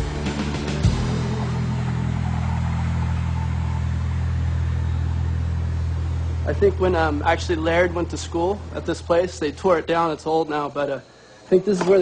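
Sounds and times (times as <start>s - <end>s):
low vehicle engine hum: 0.0s - 10.3s.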